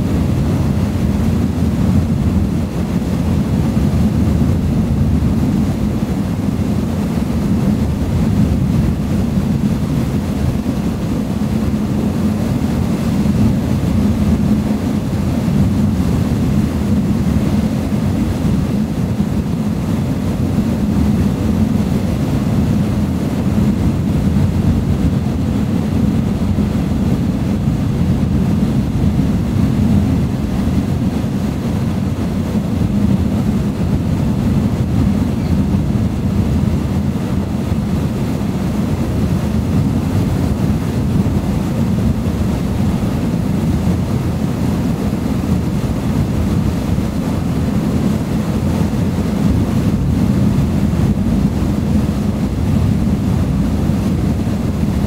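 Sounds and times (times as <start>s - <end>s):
boat engine droning: 0.0s - 55.0s
wind: 0.0s - 55.0s.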